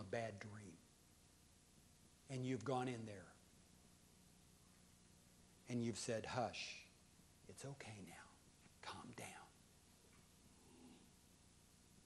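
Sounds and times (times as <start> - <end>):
man whispering: 6.6 - 9.6.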